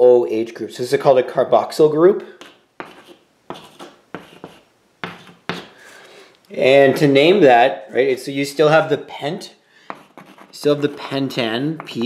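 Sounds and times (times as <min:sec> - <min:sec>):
chalk scraping on chalkboard: 0:02.4 - 0:05.8, 0:09.9 - 0:12.0.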